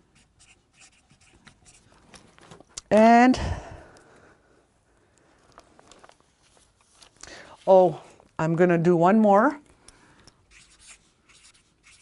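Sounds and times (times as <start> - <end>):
notebook pages rustling: 5.6 - 7.8.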